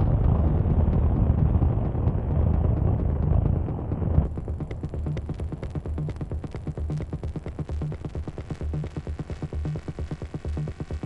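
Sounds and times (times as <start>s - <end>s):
rumbling wash of noise: 0.0s - 8.3s
electronic dance music beat: 0.3s - 11.0s.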